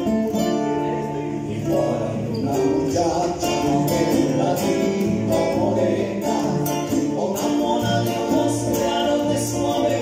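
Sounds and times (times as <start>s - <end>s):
acoustic guitars playing: 0.0s - 10.0s
congas: 0.0s - 10.0s
men singing together: 1.3s - 10.0s.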